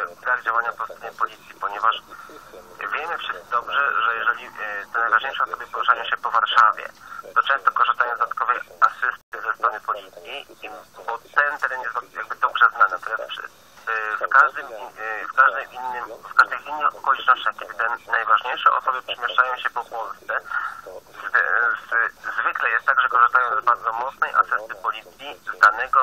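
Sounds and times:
person talking: 0.0 - 26.0.

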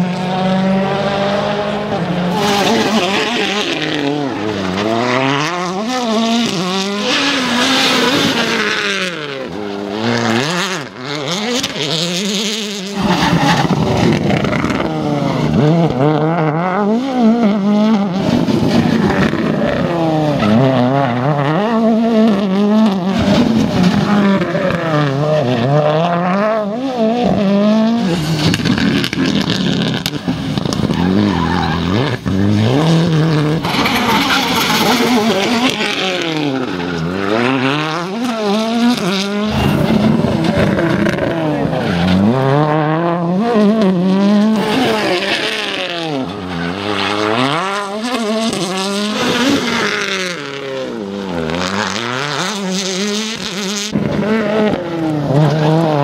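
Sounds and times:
rally car engines accelerating: 0.0 - 56.0.

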